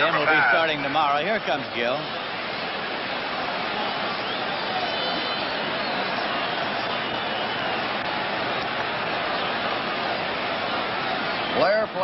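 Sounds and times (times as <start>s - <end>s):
crowd roar: 0.0s - 12.0s
faint whistles: 3.8s - 8.0s.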